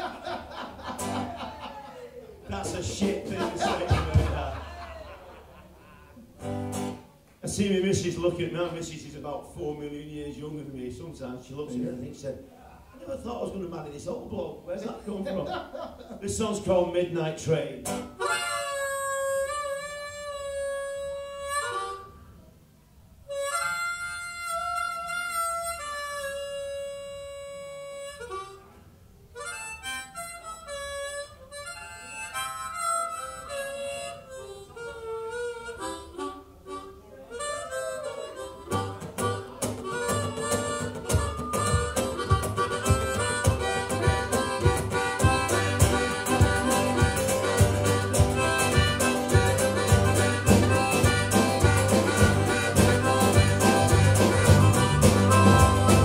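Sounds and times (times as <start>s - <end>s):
guitar: 0.0s - 5.4s, 6.1s - 8.9s, 17.4s - 22.4s, 23.1s - 56.0s
drums: 2.6s - 4.8s, 38.8s - 56.0s
harmonica: 17.8s - 22.4s, 23.2s - 56.0s
bass guitar: 38.7s - 56.0s.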